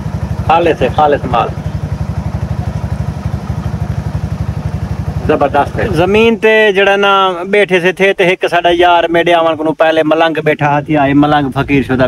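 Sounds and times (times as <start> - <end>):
small motorcycle engine idling: 0.0 - 12.0.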